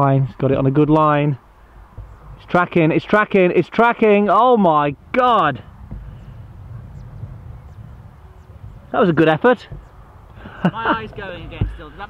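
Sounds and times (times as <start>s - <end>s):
wind on microphone: 4.8s - 12.0s.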